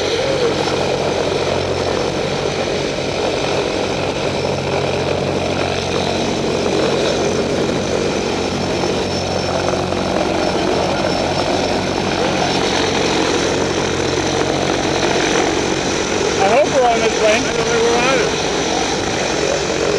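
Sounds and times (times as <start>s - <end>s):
propeller engines droning: 0.0s - 19.9s.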